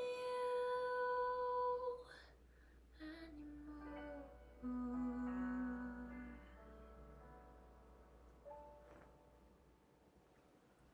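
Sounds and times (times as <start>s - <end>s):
quiet piano backing track: 0.0s - 10.9s.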